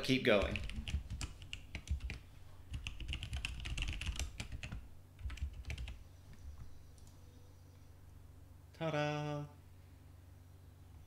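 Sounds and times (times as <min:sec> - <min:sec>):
typing on computer keyboard: 0:00.3 - 0:06.0.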